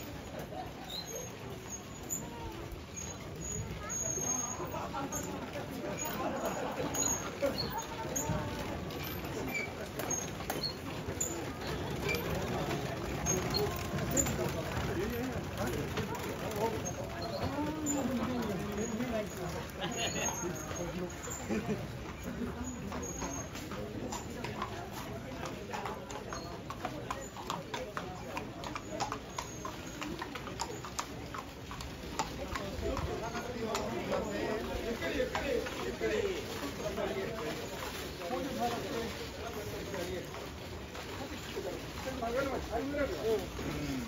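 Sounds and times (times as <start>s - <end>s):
horses hooves clip-clopping: 0.0s - 44.0s
murmur of voices: 0.0s - 44.0s
street noise: 0.0s - 44.0s.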